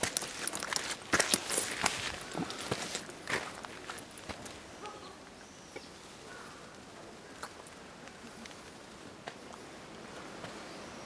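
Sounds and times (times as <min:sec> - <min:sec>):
footsteps on dirt and rock: 0:00.0 - 0:04.6.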